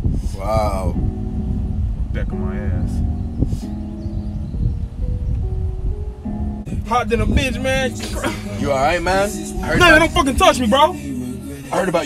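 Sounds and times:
steady low rumble: 0:00.0 - 0:11.8
music with held chords: 0:00.4 - 0:12.0.

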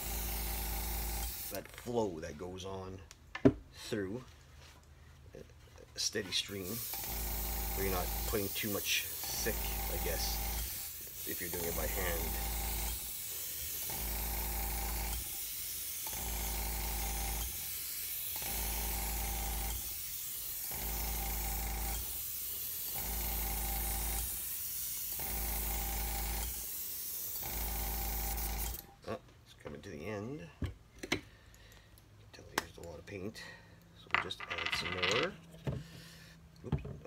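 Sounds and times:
airbrush spraying hiss: 0:00.0 - 0:01.6, 0:06.4 - 0:23.0, 0:23.9 - 0:25.2, 0:26.4 - 0:27.5.

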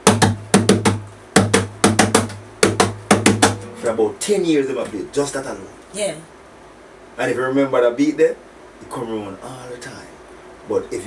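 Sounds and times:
acoustic guitar strumming reggae riff: 0:00.0 - 0:05.0
low bass note: 0:03.5 - 0:04.1.

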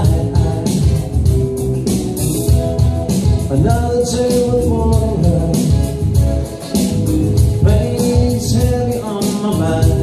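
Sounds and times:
electric guitar strumming: 0:00.0 - 0:10.0
keyboard accompaniment with beat: 0:00.0 - 0:10.0.

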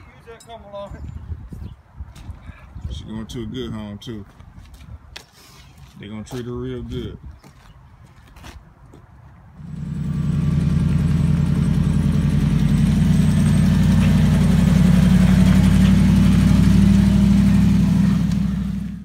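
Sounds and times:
truck engine under load: 0:09.6 - 0:19.0.

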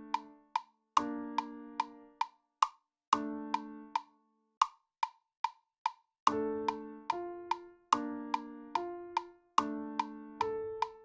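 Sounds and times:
metronome clicking: 0:00.0 - 0:05.6.

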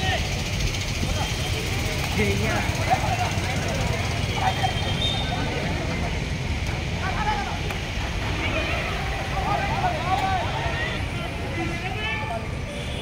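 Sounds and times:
voices calling out: 0:00.0 - 0:13.0.

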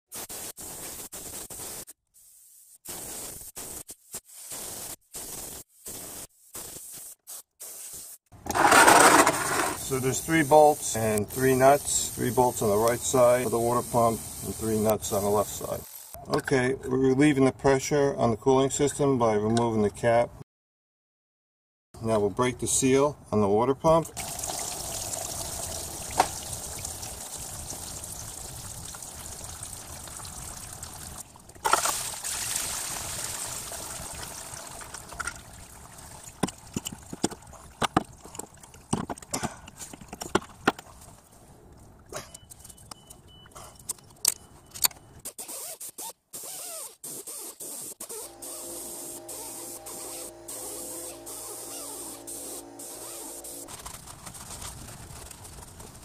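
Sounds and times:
coolant trickling out: 0:24.1 - 0:39.4
steady multi-tone hum: 0:48.2 - 0:54.5.

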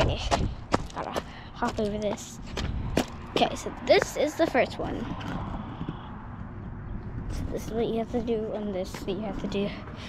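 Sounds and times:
footsteps on concrete: 0:00.0 - 0:06.1, 0:07.2 - 0:10.0
wind rumbling on microphone: 0:00.0 - 0:09.9.

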